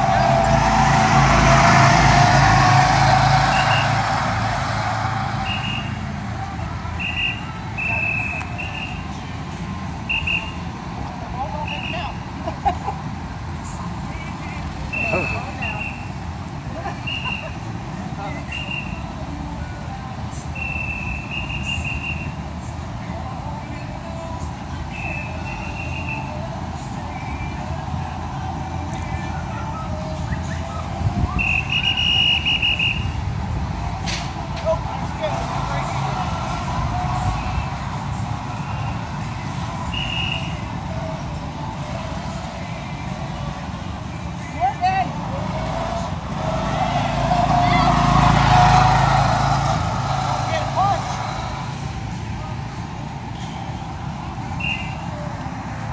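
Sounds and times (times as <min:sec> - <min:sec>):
go-kart engines droning: 0:00.0 - 0:55.9.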